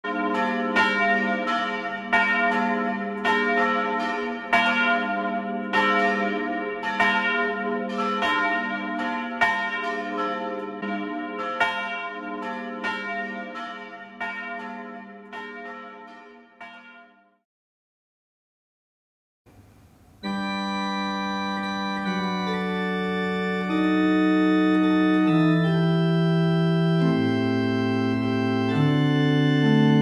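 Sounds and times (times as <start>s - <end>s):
church bells ringing: 0.0s - 17.3s, 20.2s - 30.0s.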